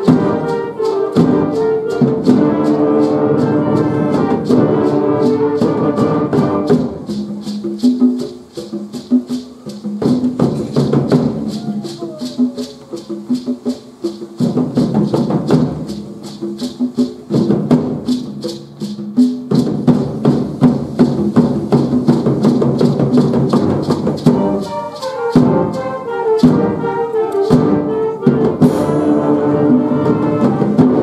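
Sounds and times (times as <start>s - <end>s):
high held wind notes: 0.0s - 16.8s, 22.6s - 31.0s
fast percussion rhythm: 0.0s - 31.0s.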